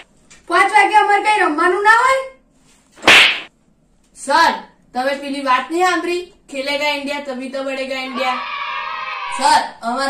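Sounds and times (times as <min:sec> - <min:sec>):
short swish: 0:03.0 - 0:03.5.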